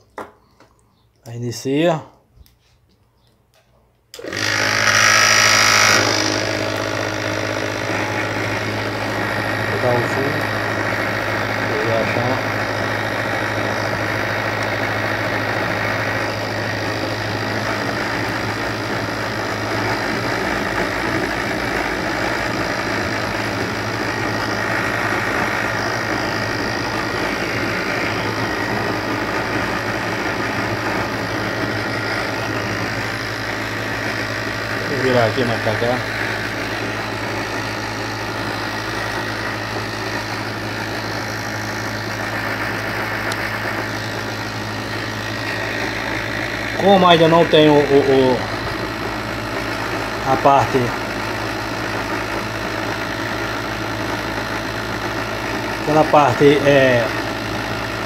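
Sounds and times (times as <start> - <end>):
gas torch flame rushing: 4.2 - 58.0.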